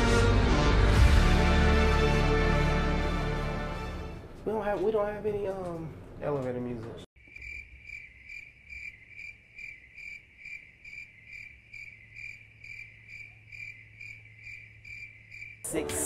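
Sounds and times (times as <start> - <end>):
crickets chirping: 7.2 - 15.8.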